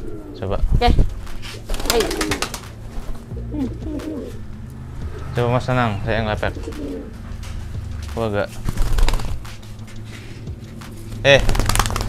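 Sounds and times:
pigeons cooing: 0.0s - 7.8s
pigeon wings fluttering: 1.0s - 3.3s, 8.5s - 9.7s, 10.8s - 12.0s.

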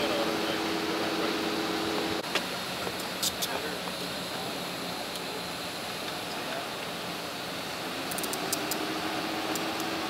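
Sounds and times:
mechanical hum and hiss: 0.0s - 10.0s.

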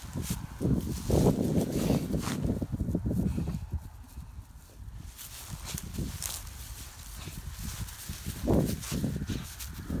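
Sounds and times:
footsteps on dry grass: 0.0s - 10.0s.

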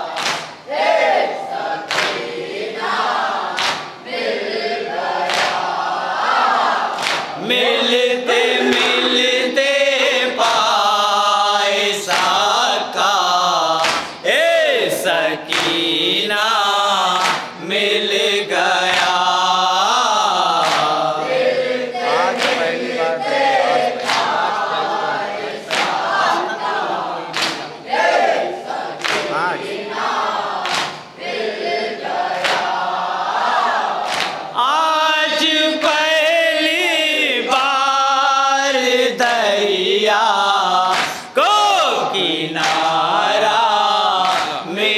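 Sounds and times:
chest-beating slaps: 0.2s - 0.6s, 8.3s - 10.1s, 13.8s - 14.2s, 34.0s - 34.4s, 42.6s - 42.9s, 44.2s - 44.7s
men chanting through a microphone: 0.8s - 44.9s.

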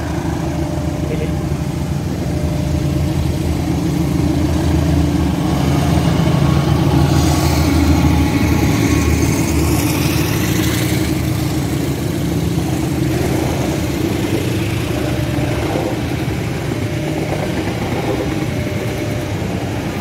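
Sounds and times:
locomotive engine passing: 0.0s - 20.0s
train wheels rumbling on rails: 0.0s - 20.0s.

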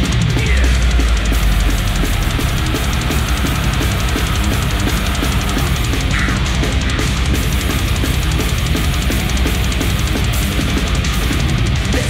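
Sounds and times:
bass guitar: 0.0s - 12.0s
distorted electric guitars: 0.0s - 12.0s
fast dense drumming: 0.0s - 12.0s.

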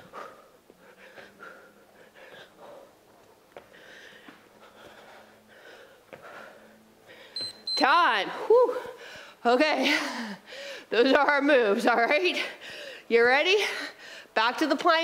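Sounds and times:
woman breathing hard: 0.0s - 7.5s, 8.4s - 10.9s, 12.4s - 14.4s.

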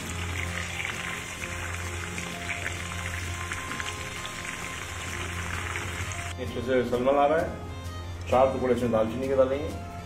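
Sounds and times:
nuts sizzling in hot oil: 0.0s - 6.3s
background music: 0.0s - 10.0s.

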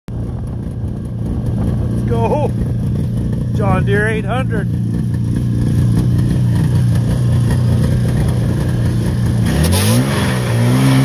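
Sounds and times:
snowmobile engine idling: 0.1s - 9.7s.

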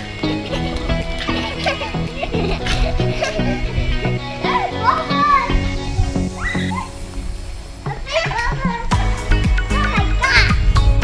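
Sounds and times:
background music: 0.0s - 11.0s
children calling out and squealing: 4.1s - 7.0s, 7.8s - 9.0s, 9.6s - 10.7s.

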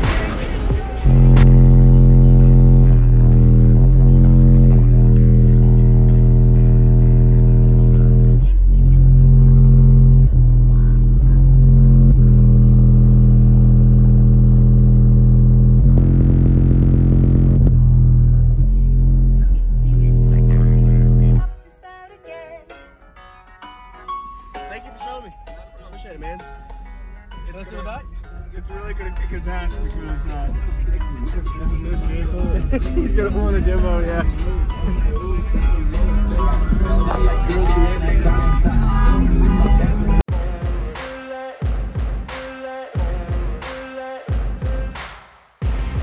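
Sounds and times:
loud bass-heavy music from subwoofers: 0.0s - 21.6s, 23.2s - 46.0s.

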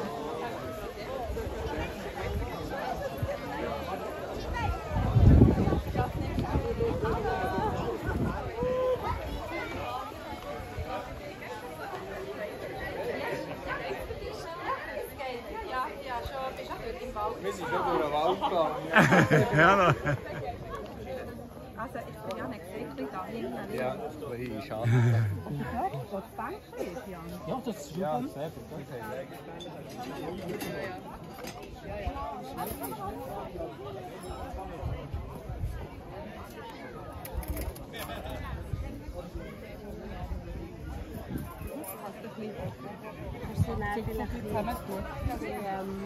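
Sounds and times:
overlapping chatter of people: 0.0s - 46.0s
overlapping conversation: 17.6s - 28.1s.

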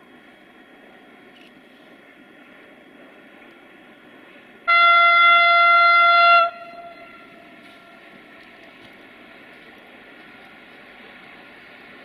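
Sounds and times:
faint steady noise: 0.0s - 12.0s
locomotive horn blast: 4.7s - 8.0s.

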